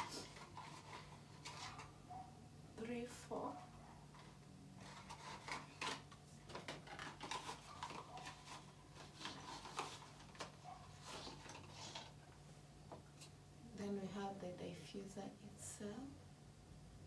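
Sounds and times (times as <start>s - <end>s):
packaging rustling: 0.0s - 1.9s, 4.1s - 12.4s.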